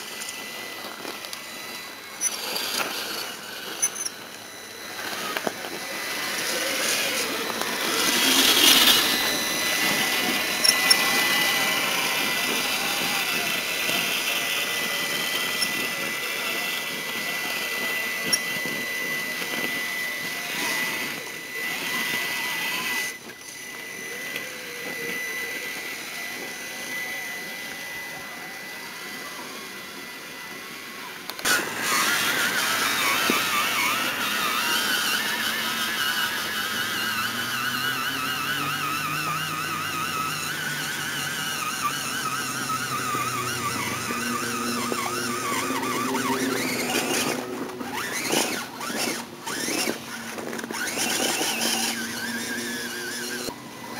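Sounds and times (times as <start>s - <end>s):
electric motor whining: 0.0s - 53.9s.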